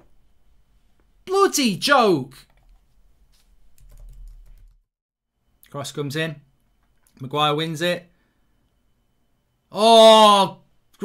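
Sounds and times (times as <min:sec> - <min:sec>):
faint keyboard typing: 0:02.4 - 0:04.8.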